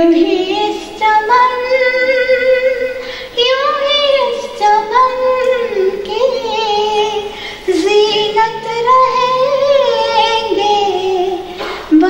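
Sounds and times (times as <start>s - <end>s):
elderly woman singing: 0.0s - 12.0s.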